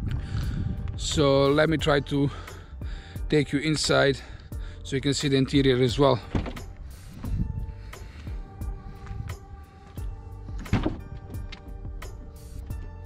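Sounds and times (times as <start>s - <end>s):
background music: 0.0s - 13.0s
car door latch clunk: 6.3s - 6.7s, 10.6s - 11.4s.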